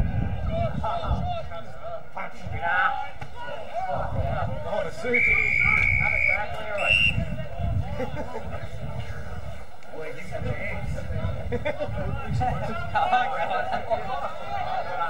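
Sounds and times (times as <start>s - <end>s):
whistle blasts: 5.1s - 7.3s.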